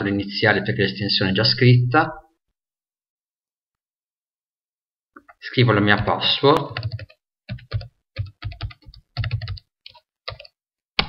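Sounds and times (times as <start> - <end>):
keystrokes on computer keyboard: 6.0 - 10.6.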